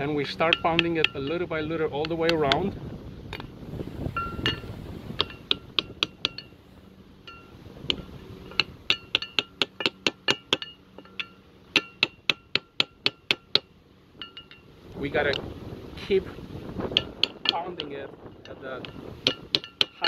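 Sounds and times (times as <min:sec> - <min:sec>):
hammer tapping metal plate: 0:00.2 - 0:02.7, 0:04.2 - 0:06.5, 0:07.3 - 0:14.7, 0:16.9 - 0:20.0.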